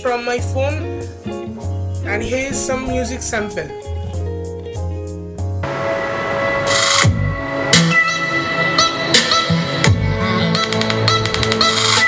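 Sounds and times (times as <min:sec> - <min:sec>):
electronic music with deep bass: 0:01.9 - 0:05.4
stuttering run of hits: 0:02.1 - 0:04.3.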